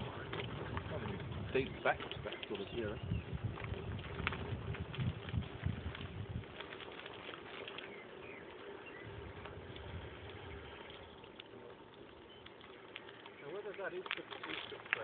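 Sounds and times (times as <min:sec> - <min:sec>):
wind buffeting microphone: 0:00.0 - 0:06.9, 0:07.9 - 0:11.2
clicks and rattles: 0:12.4 - 0:15.0.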